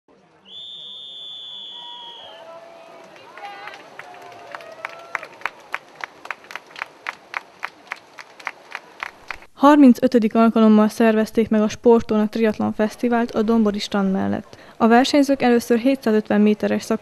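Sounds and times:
people shouting: 1.7s - 5.4s.

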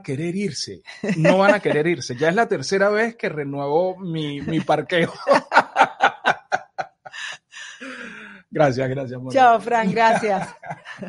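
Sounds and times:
laughter: 1.0s - 2.3s, 4.4s - 7.2s, 9.8s - 11.0s.

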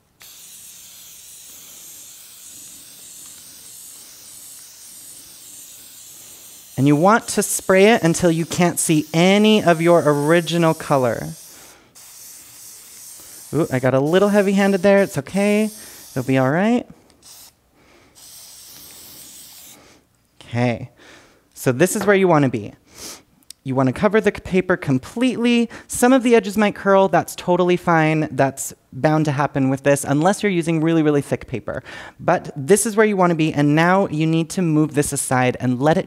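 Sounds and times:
aerosol spray paint hissing: 0.2s - 16.6s, 17.2s - 19.8s.

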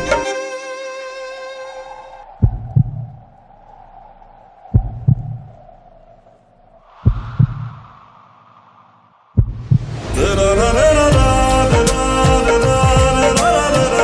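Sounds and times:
soft rushing swell: 1.4s - 14.0s
heartbeat double thumps: 2.3s - 3.4s, 4.3s - 6.3s, 7.0s - 7.8s, 9.4s - 10.1s, 11.0s - 13.4s.

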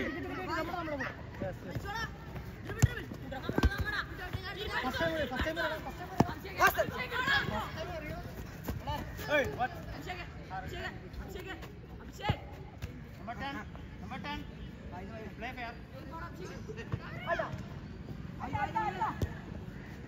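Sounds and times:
low background hubbub: 0.0s - 20.0s
young players shouting: 1.8s - 10.9s.

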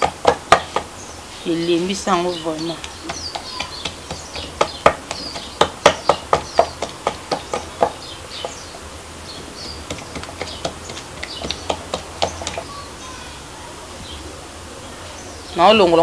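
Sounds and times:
birds chirping: 0.0s - 16.0s.

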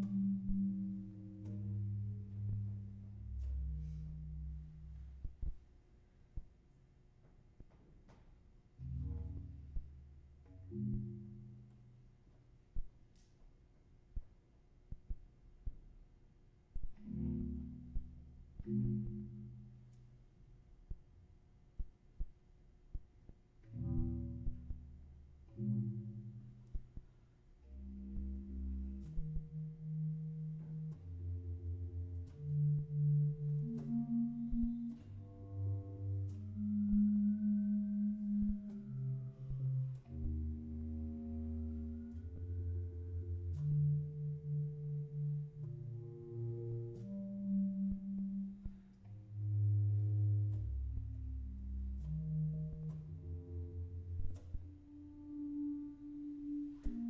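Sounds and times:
bass clarinet low tone: 0.0s - 5.6s, 27.6s - 57.0s.

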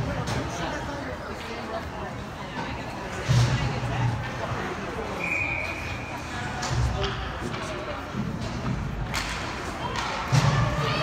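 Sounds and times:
high whistle-like tone: 5.2s - 6.2s.

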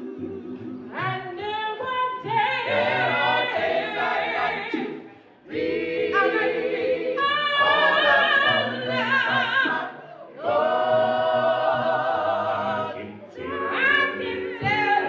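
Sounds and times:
vocal group singing a cappella: 0.0s - 15.0s.

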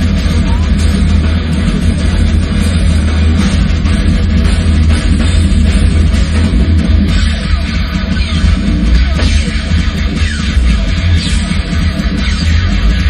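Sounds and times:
drums and cymbals: 0.0s - 13.0s
heavy metal band playing live: 0.0s - 13.0s.

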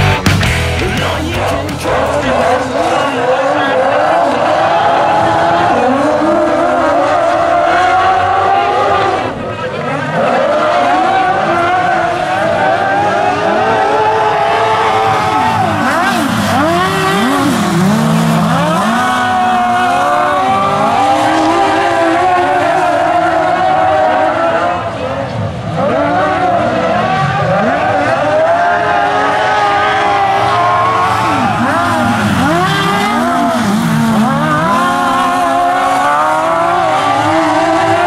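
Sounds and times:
motorcycle engines revving: 0.0s - 38.0s.

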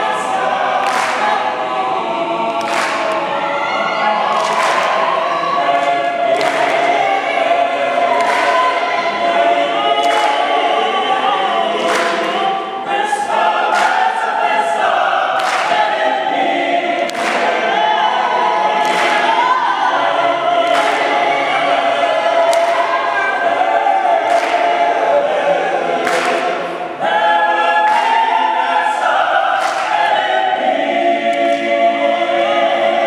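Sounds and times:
choir singing a cappella: 0.0s - 33.0s
hand claps: 0.8s - 1.4s, 2.5s - 3.2s, 4.3s - 5.0s, 5.7s - 7.0s, 8.1s - 8.7s, 10.0s - 10.5s, 11.8s - 12.4s, 13.7s - 14.3s, 15.4s - 16.0s, 17.0s - 17.6s, 18.8s - 19.3s, 20.6s - 21.2s, 22.5s - 22.9s, 24.2s - 24.8s, 26.0s - 26.8s, 27.8s - 28.4s, 29.1s - 30.3s, 31.3s - 31.8s.

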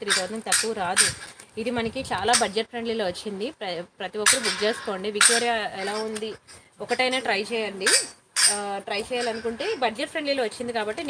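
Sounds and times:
woman speaking: 0.0s - 11.0s.

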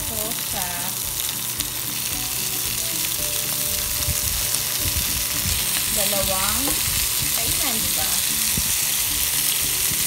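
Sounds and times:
chicken sizzling in hot oil: 0.0s - 10.0s.

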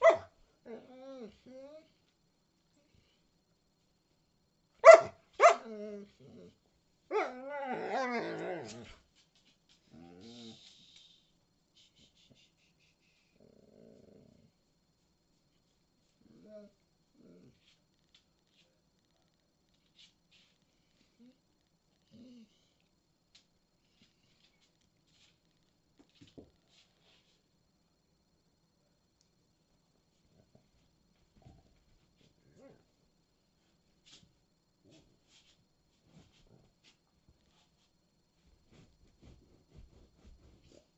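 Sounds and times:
dog whining: 0.0s - 1.9s, 7.1s - 9.0s
faint hiss: 8.7s - 40.9s.

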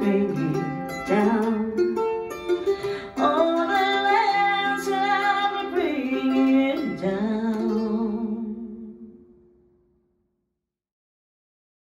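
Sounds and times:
woman singing: 0.0s - 2.0s, 2.7s - 9.3s
amplified mandolin playing: 0.0s - 9.7s.

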